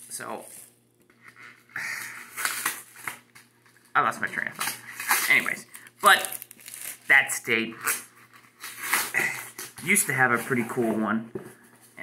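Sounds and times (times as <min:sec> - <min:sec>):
packaging clicks and rustles: 0:02.1 - 0:07.1.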